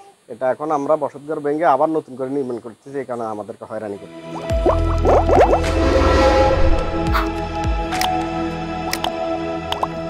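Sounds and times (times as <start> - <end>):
outro music of held tones: 4.3 - 7.6.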